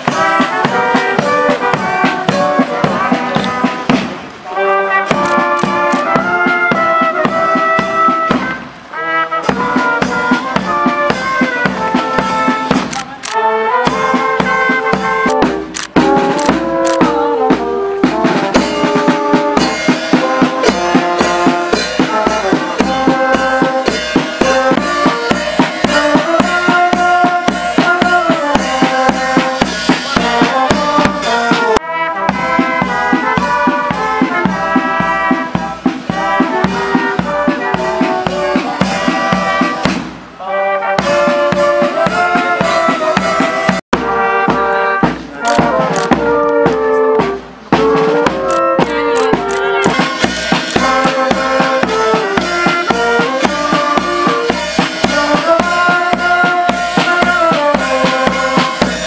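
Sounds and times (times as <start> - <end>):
bass drum beat: 0.0 - 4.3, 13.9 - 40.4, 41.0 - 59.0
trumpets and trombones: 0.0 - 59.0.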